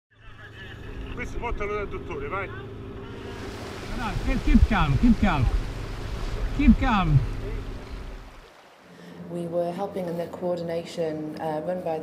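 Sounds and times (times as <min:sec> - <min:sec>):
boat engine drone: 0:00.1 - 0:08.5.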